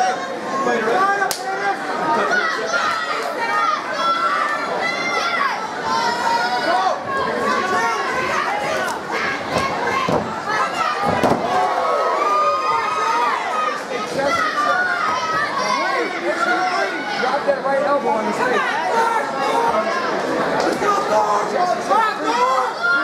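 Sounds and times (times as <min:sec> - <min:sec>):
crowd shouting and yelling: 0:00.0 - 0:23.0.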